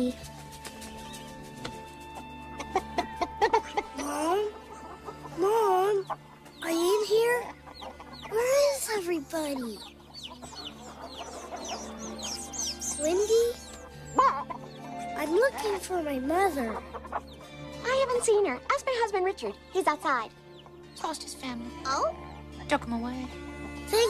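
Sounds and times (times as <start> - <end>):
background music: 0.0 - 24.0
chicks peeping: 0.3 - 15.9, 16.6 - 18.3, 20.4 - 21.1, 22.1 - 22.6
hens clucking and squawking: 1.8 - 15.8, 16.5 - 18.5.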